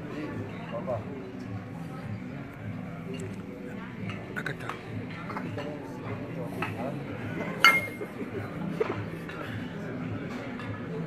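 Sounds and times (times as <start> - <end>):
diners chatting: 0.0 - 11.0
clink of tableware: 7.6 - 8.0.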